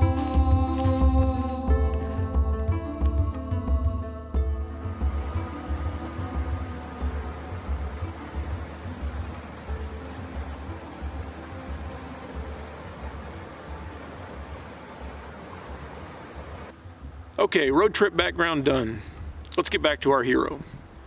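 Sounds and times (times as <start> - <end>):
brook rushing over rocks: 4.9 - 16.7.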